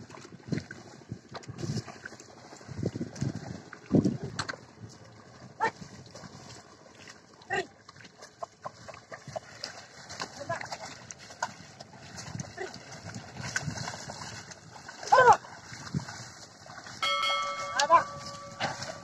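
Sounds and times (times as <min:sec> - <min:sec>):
hooves sloshing in mud: 0:00.0 - 0:19.0
man calling to animals: 0:17.7 - 0:18.2.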